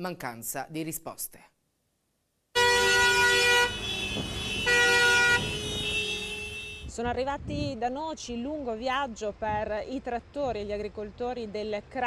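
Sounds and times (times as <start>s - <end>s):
tractor horns honking: 2.6s - 7.0s
tractor engines rumbling: 3.0s - 12.0s.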